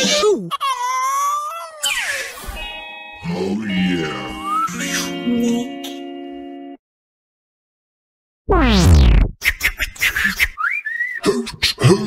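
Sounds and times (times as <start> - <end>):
falling cartoon tone: 8.5 - 9.3.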